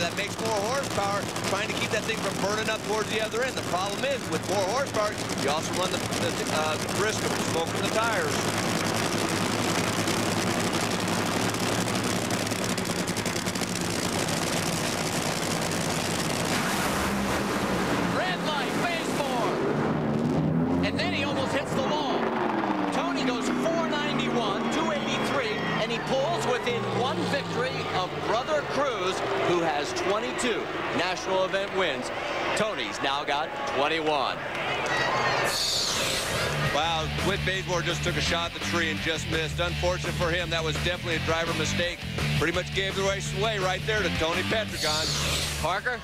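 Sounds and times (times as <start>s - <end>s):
voices: 0.0s - 8.6s, 18.1s - 19.6s, 20.8s - 46.0s
crowd noise: 0.0s - 46.0s
drag racing engines roaring: 0.0s - 46.0s.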